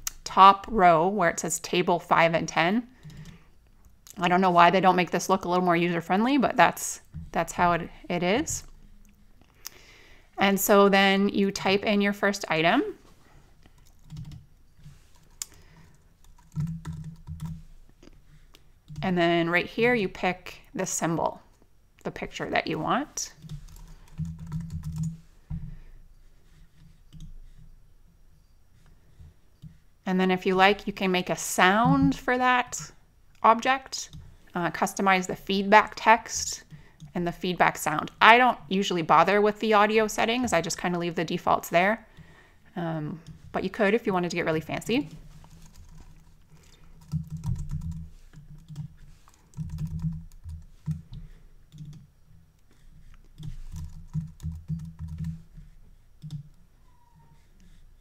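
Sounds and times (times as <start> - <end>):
keyboard typing: 3.0 - 3.5, 13.6 - 17.7, 23.4 - 25.2, 27.1 - 27.3, 45.4 - 52.1, 53.1 - 56.6.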